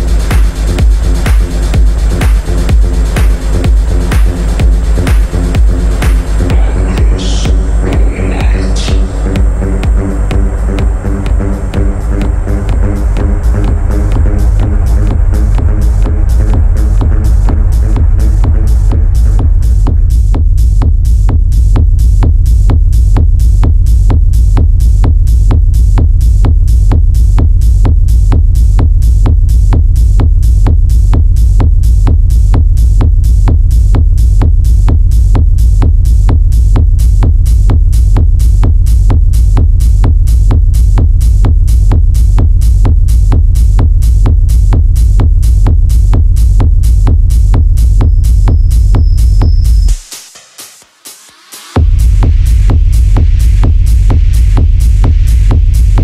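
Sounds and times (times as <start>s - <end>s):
deep steady bass: 0.0s - 56.0s
fast techno kick drum: 0.0s - 56.0s.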